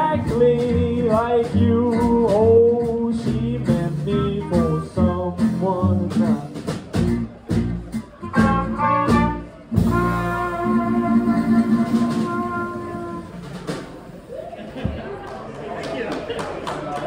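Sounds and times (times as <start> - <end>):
jazz band playing: 0.0 - 14.4.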